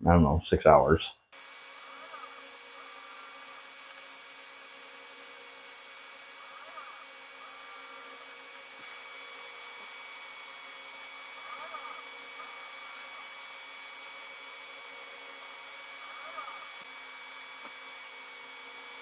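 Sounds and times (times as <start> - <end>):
fan hum with thin whine: 1.4 - 19.0
stepper motor whirring: 1.4 - 19.0.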